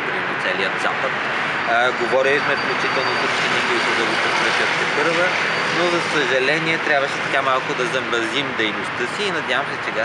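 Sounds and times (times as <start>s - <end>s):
city road traffic: 0.0s - 10.0s
man speaking: 0.0s - 10.0s.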